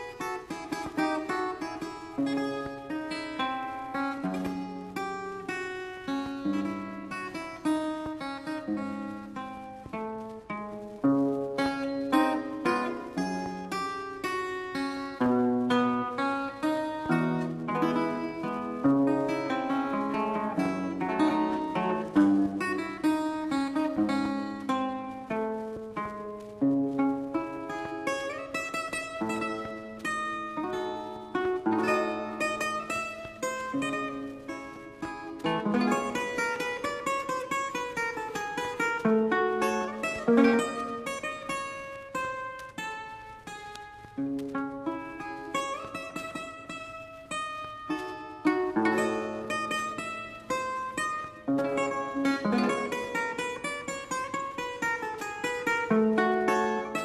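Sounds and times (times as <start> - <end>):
solo guitar playing melody: 0.0 - 57.0.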